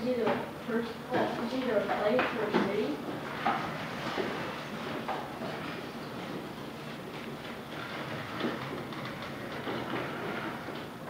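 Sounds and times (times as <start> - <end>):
classroom room hum: 0.0 - 11.0.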